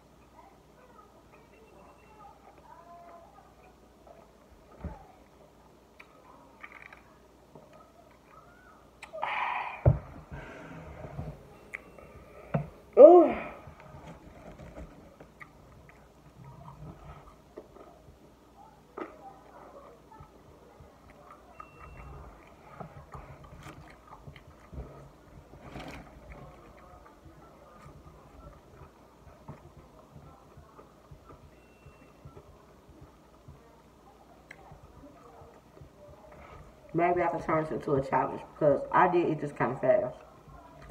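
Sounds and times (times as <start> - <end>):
faint chewing: 0.2 - 9.5, 10.3 - 37.0, 40.2 - 40.9.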